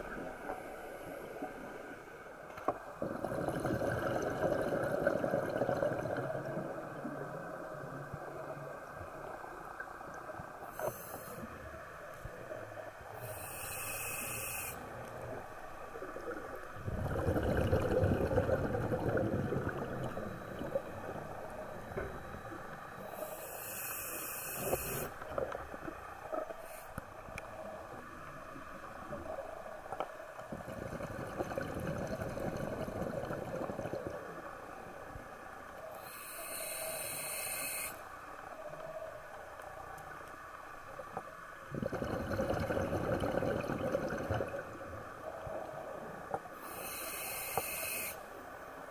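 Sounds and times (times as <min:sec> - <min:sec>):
low water background: 0:00.0 - 0:48.9
exhaled air bubbling underwater: 0:02.8 - 0:40.2, 0:40.8 - 0:48.9
regulator inhale hiss: 0:10.6 - 0:11.6, 0:13.1 - 0:15.1, 0:23.0 - 0:25.3, 0:26.6 - 0:27.1, 0:35.9 - 0:38.2, 0:46.5 - 0:48.4.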